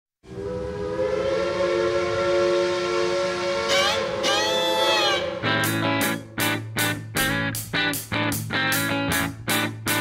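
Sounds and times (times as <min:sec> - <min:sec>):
train whistle chord: 0:00.2 - 0:07.4.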